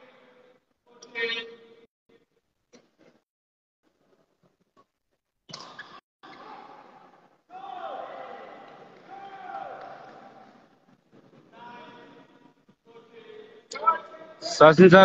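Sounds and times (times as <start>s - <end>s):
indistinct voices echoing: 6.2s - 14.8s.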